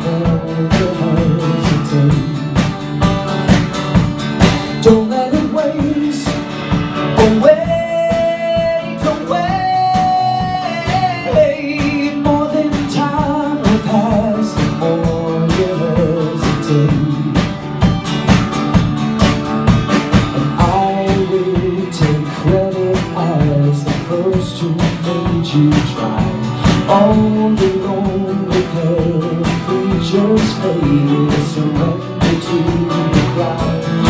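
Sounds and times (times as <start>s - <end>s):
man singing: 0.0s - 3.0s, 4.6s - 17.7s, 20.2s - 34.0s
acoustic guitar: 0.0s - 34.0s
drum kit beat: 0.0s - 34.0s.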